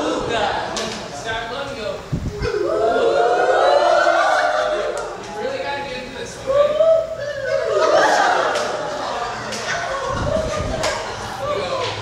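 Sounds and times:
group shouting together: 2.4s - 5.2s, 6.5s - 12.0s.

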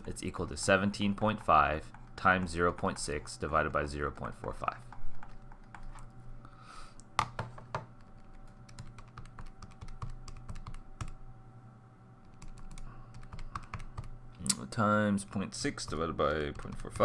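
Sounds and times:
faint steady hum: 0.0s - 17.0s
keyboard keys tapping: 7.2s - 11.2s, 12.2s - 14.2s, 15.2s - 17.0s.

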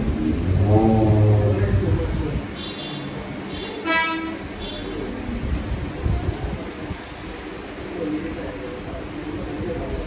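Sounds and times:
steady background noise: 0.0s - 10.0s.

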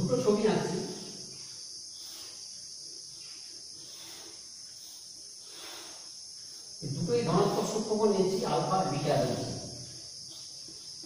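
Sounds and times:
man speaking: 0.0s - 1.0s, 6.8s - 9.8s
chalk scratching on blackboard: 3.8s - 9.1s.

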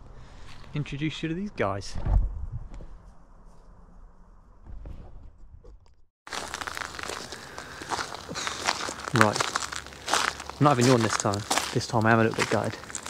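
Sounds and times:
quiet outdoor background: 0.0s - 13.0s
crackling rustle at microphone: 6.3s - 13.0s.

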